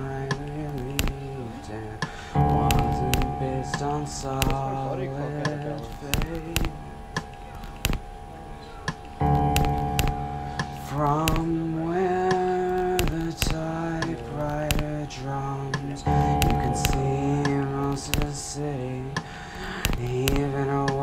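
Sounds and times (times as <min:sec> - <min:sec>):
held pitched synth notes: 0:00.0 - 0:20.8
clicking percussion: 0:02.0 - 0:04.8, 0:05.4 - 0:11.6, 0:12.3 - 0:15.0, 0:15.7 - 0:18.6, 0:19.2 - 0:21.0
wavering melody line: 0:02.4 - 0:19.2.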